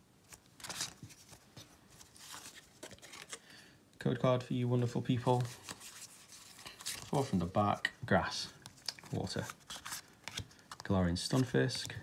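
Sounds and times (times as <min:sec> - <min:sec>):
trading cards and foil rustling: 0:00.3 - 0:03.5, 0:04.8 - 0:12.0.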